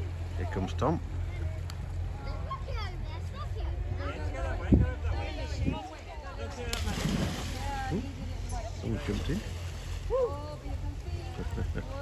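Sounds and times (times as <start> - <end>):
churning water: 0.0 - 3.7, 6.1 - 12.0
voices: 0.0 - 12.0
person splashing into water: 6.7 - 8.0.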